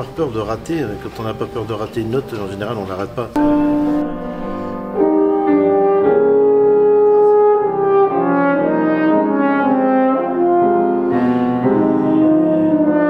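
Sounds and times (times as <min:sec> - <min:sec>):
french horn playing sustained notes: 0:00.0 - 0:13.0.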